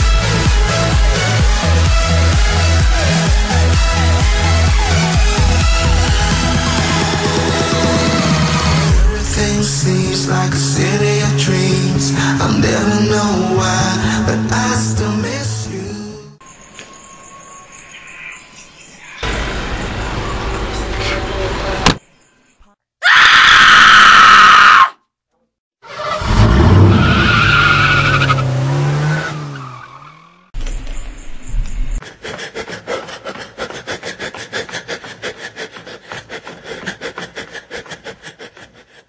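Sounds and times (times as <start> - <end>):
tyre screech: 25.8 - 30.4.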